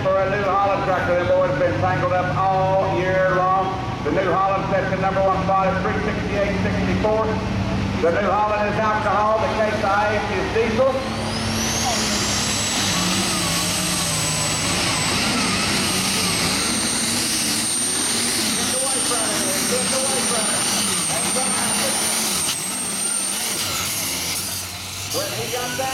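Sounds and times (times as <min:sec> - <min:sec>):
high turbo whine: 0:00.0 - 0:25.9
tractor engine at full power: 0:00.0 - 0:25.9.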